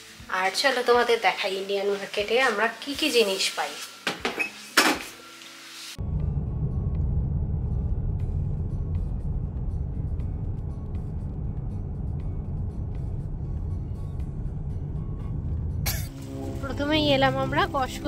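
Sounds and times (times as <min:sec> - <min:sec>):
background music: 0:00.0 - 0:18.0
car driving rumble: 0:06.0 - 0:17.9.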